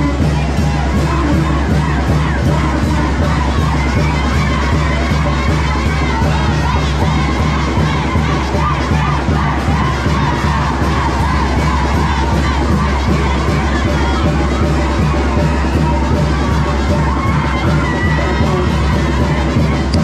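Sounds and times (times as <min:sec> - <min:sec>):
band music bass: 0:00.0 - 0:20.0
crowd shouting and cheering: 0:00.0 - 0:20.0.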